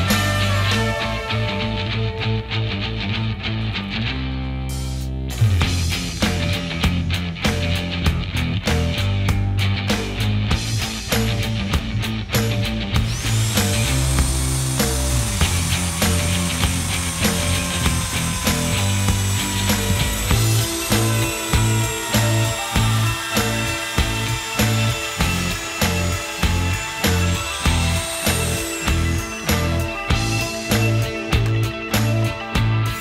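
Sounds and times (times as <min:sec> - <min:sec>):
trim router whining: 0:00.0 - 0:02.3, 0:13.0 - 0:33.0
background music with steady beat: 0:00.0 - 0:03.6, 0:04.6 - 0:33.0.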